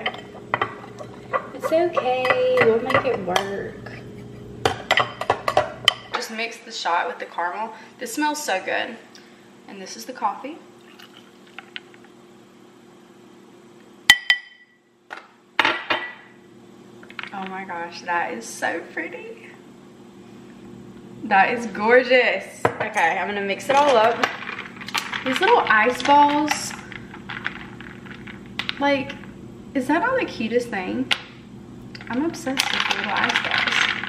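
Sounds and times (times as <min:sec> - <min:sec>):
ice clinking in glass: 0:10.9 - 0:11.6.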